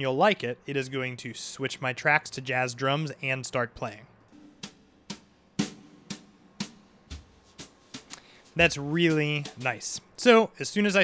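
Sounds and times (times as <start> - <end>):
jazz drum backing track: 4.3 - 10.3.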